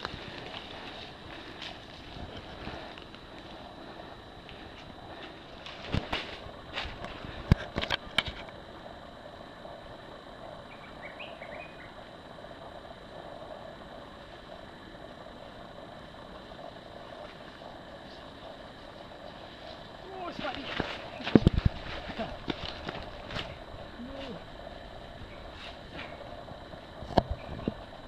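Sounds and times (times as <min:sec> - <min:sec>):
unicycle over dry leaves: 0:00.0 - 0:08.9, 0:13.1 - 0:28.0
outdoor background noise: 0:00.0 - 0:28.0.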